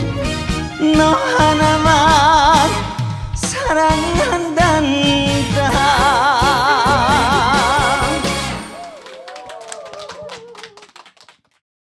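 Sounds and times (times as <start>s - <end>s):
audience applause: 6.8s - 11.6s.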